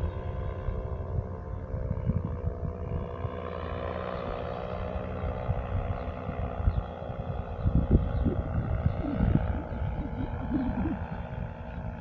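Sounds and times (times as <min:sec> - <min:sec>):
paramotor engine droning: 0:00.0 - 0:12.0
wind buffeting microphone: 0:00.4 - 0:03.5, 0:04.4 - 0:12.0.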